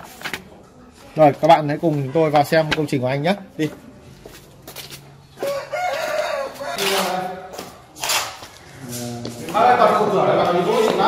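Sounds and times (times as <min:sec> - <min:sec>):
rooster crowing: 0:05.4 - 0:07.4.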